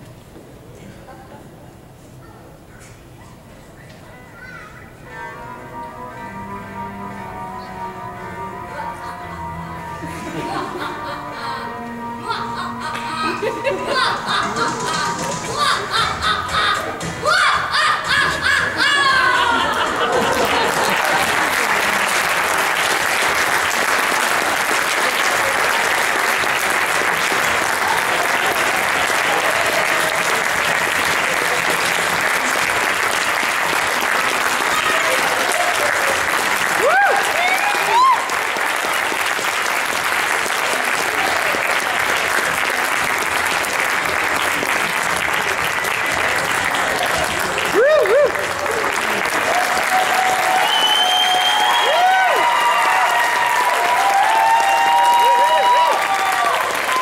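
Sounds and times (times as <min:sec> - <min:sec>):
audience applauding: 0:12.3 - 0:57.0
crowd shouts gliding in pitch: 0:49.5 - 0:57.0.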